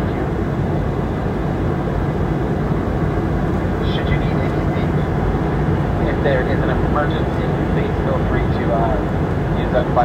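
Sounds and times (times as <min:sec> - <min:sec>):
jet engines droning: 0:00.0 - 0:10.0.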